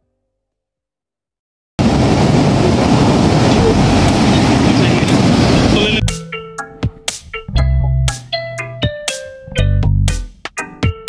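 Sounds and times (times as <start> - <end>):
waves breaking on shore: 1.8 - 6.0.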